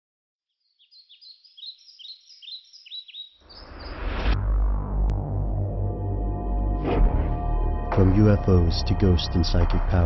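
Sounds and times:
songbird chirping: 0:00.4 - 0:04.3
low drone: 0:03.6 - 0:10.0.

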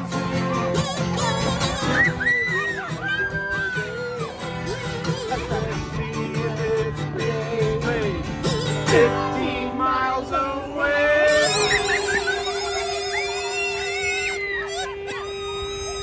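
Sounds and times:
strummed acoustic guitar: 0:00.0 - 0:16.0
kazoo buzzing a tune: 0:11.3 - 0:16.0.

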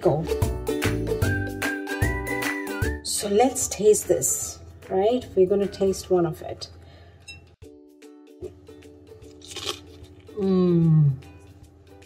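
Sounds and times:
background music: 0:00.0 - 0:12.0
crunch of a bite: 0:09.2 - 0:10.4.

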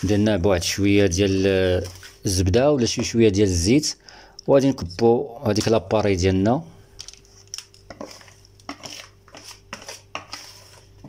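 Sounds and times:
faint hum: 0:03.9 - 0:08.5.

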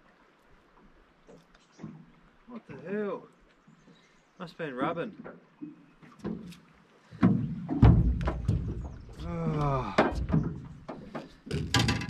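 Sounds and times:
thumps on metal boat deck: 0:06.2 - 0:06.6, 0:07.2 - 0:12.0.

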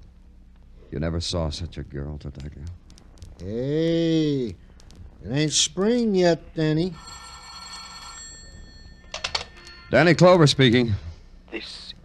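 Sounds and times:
telephone bell ringing: 0:06.9 - 0:10.2.

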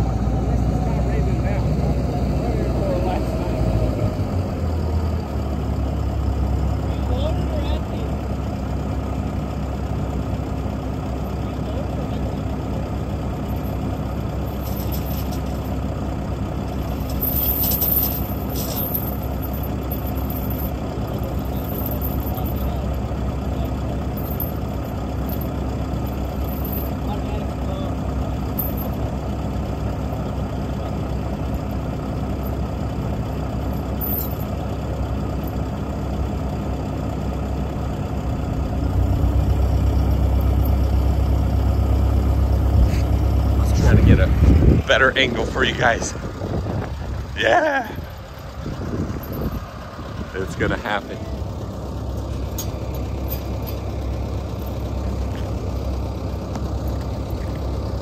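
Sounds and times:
deep loud engine: 0:00.0 - 0:58.0
diesel engine idling: 0:00.0 - 0:58.0.

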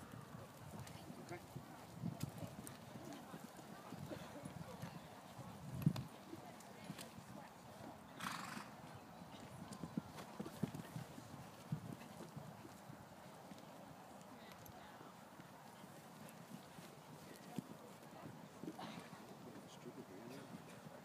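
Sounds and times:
horse hooves cantering on sand: 0:00.0 - 0:21.0.

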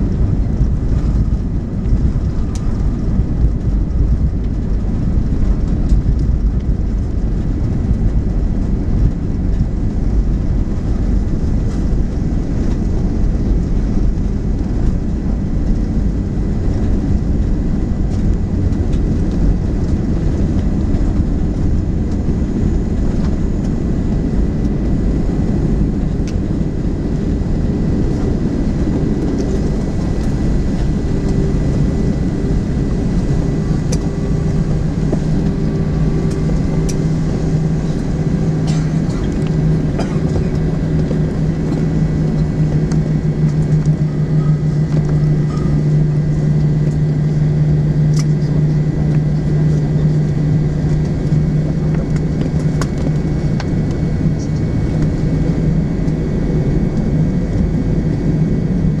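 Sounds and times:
jet engines idling rumble: 0:00.0 - 0:59.0
steady low hum: 0:00.0 - 0:59.0.

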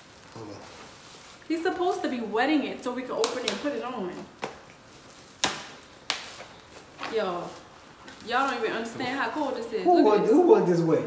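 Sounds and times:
frozen shirt cracking: 0:03.1 - 0:08.6.

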